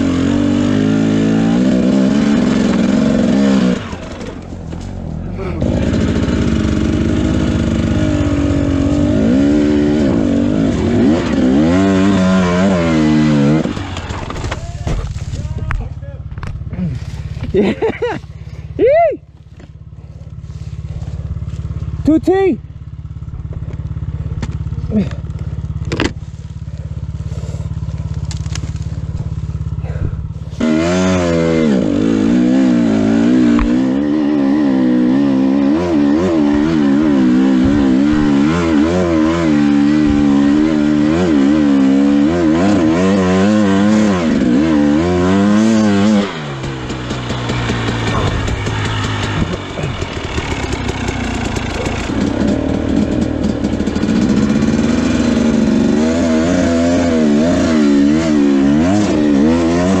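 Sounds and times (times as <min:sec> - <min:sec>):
motorcycle engine revving: 0:00.0 - 1:00.0.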